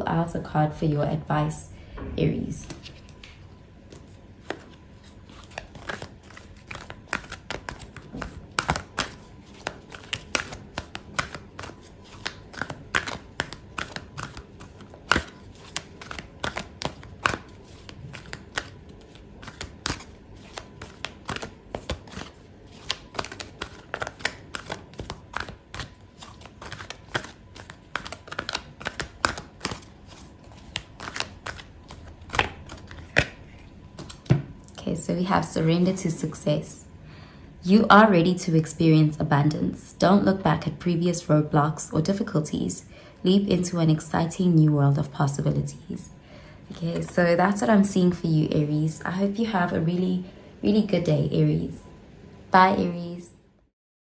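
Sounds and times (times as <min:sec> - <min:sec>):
cards being shuffled: 0:02.7 - 0:34.5.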